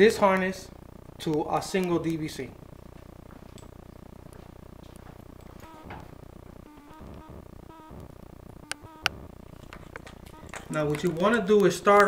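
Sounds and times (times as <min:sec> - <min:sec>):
faint indistinct sounds: 0:00.0 - 0:12.0
low background hum: 0:00.0 - 0:12.0.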